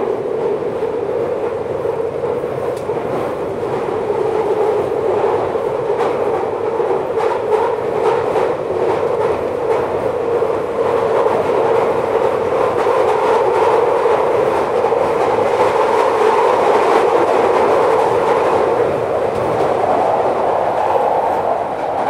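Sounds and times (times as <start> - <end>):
train wheels running on rails: 0.0 - 22.0.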